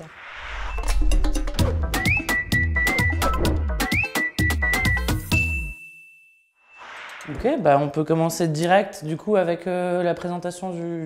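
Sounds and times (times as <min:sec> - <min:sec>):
high bell-like ding: 0:05.3 - 0:06.8.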